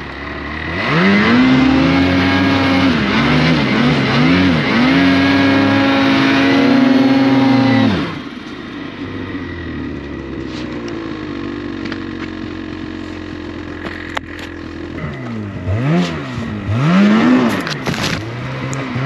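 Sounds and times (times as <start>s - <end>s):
snowmobile engine revving: 0.0s - 8.4s, 12.6s - 19.0s.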